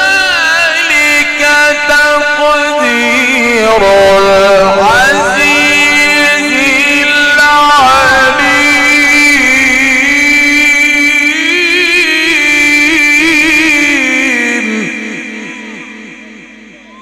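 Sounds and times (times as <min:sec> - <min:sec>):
man reciting over loudspeaker: 0:00.0 - 0:17.0
repeating echoes: 0:00.0 - 0:17.0.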